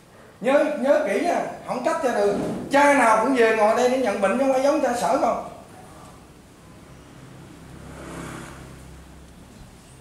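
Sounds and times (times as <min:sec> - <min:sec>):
motor vehicle passing by: 0:06.6 - 0:10.0.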